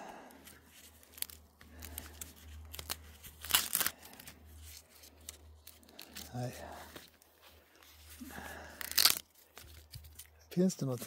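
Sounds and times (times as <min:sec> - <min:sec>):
corn husks crunching and tearing: 0:00.5 - 0:07.3, 0:08.0 - 0:11.0.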